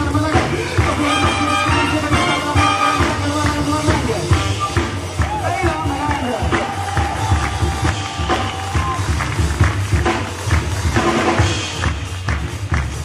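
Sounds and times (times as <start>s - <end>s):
deep bass line: 0.0s - 13.0s
drums and percussion beat: 0.0s - 13.0s
jazz orchestra playing: 0.1s - 6.2s.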